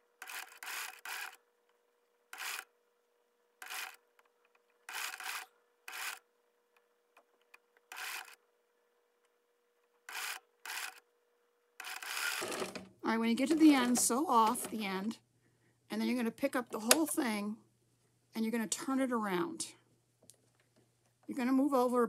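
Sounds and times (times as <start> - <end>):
sewing machine stitching: 0.1 - 1.4, 2.3 - 2.7, 3.6 - 4.1, 4.8 - 6.2, 7.9 - 8.4, 10.0 - 11.0, 11.8 - 14.9.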